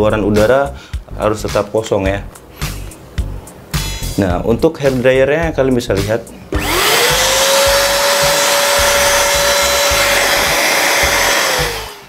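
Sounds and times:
vacuum cleaner motor whine: 6.5s - 12.0s.

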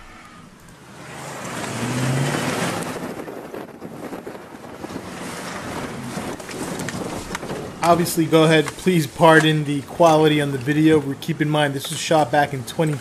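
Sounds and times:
truck engine revving: 0.0s - 13.0s
wind and tyre noise: 0.0s - 13.0s.

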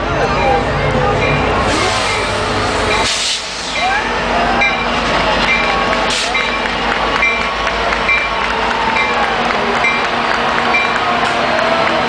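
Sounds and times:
locomotive bell dinging: 0.0s - 3.1s, 3.8s - 11.1s
crowd voices: 0.0s - 12.0s
train running noise: 0.0s - 12.0s
short hiss: 3.0s - 3.8s.

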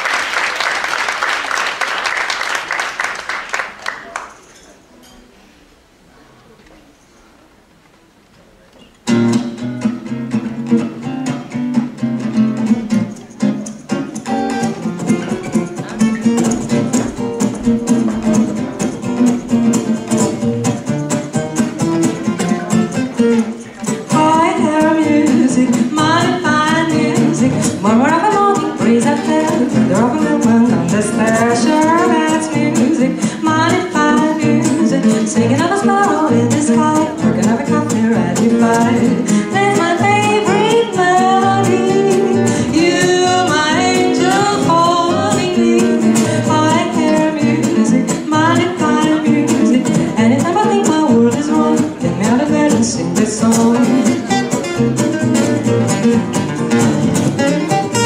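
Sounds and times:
acoustic guitars: 8.3s - 58.0s
woman singing jazz: 24.1s - 54.3s.

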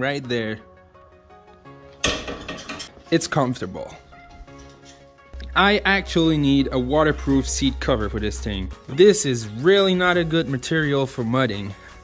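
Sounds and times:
background music: 0.0s - 12.0s
metallic clatter and rattle: 2.0s - 2.9s.

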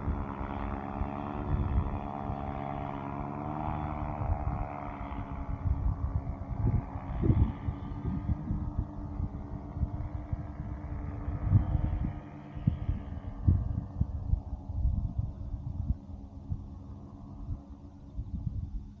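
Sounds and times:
small engine humming: 0.0s - 19.0s
wind buffeting microphone: 0.0s - 19.0s.

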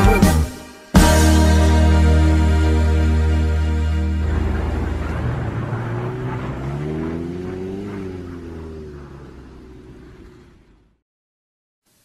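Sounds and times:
car engine revving: 3.7s - 11.0s.

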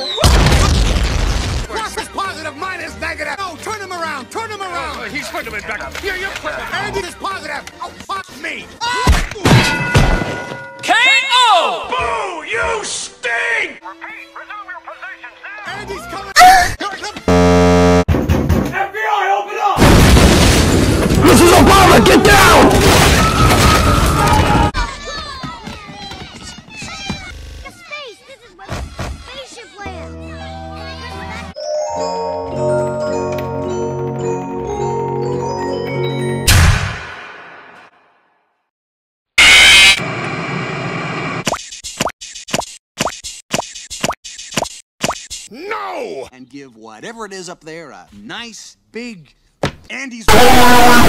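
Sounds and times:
harsh buzzing tone: 17.3s - 18.1s
loud burst of harsh noise: 39.4s - 41.4s
loud noisy blast: 39.4s - 41.4s.

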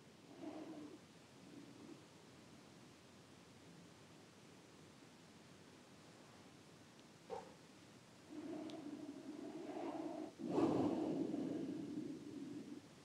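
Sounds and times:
person breathing slowly: 8.3s - 12.9s.

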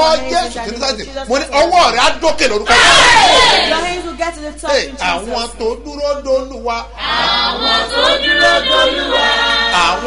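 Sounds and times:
choir singing sustained notes: 7.0s - 10.0s.

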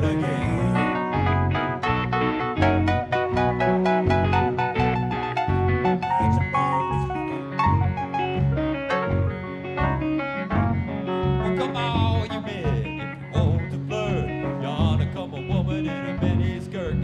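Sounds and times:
lead guitar bending notes: 0.0s - 16.4s
electric guitars: 0.0s - 17.0s.

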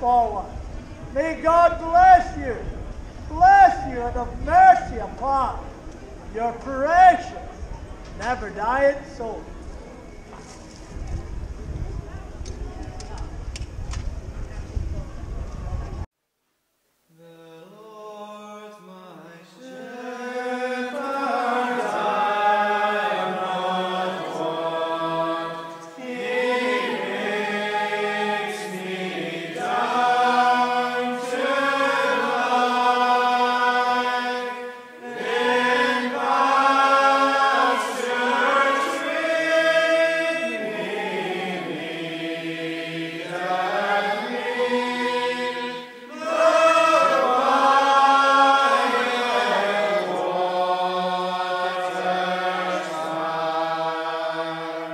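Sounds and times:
group singing unaccompanied: 17.6s - 54.9s.

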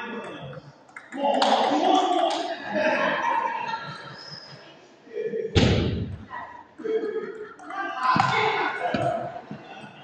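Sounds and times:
people's voices: 0.0s - 10.0s
loud thud echoing in hall: 5.5s - 6.3s.

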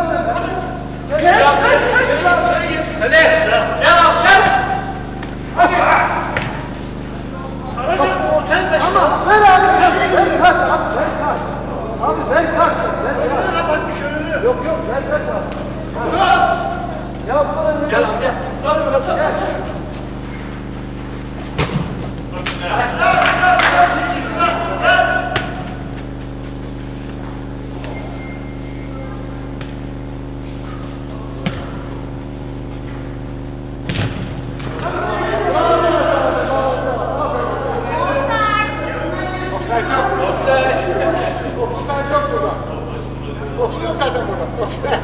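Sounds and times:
low electrical hum: 0.0s - 45.0s
faint ball kick thud: 21.5s - 22.1s, 31.4s - 31.8s, 33.8s - 34.9s
players calling out: 22.1s - 45.0s
faint short high beep: 27.9s - 29.0s.

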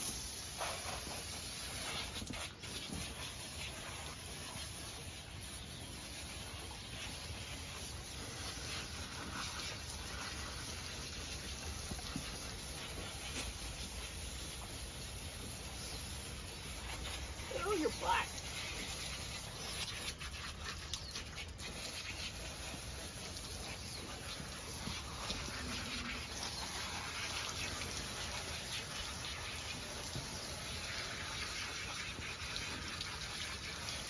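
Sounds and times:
hose spraying water: 0.0s - 34.0s.

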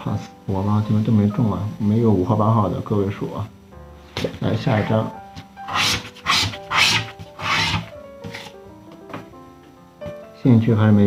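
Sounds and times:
background music: 0.0s - 11.0s
scratching tool rasping on ticket: 5.7s - 8.5s.

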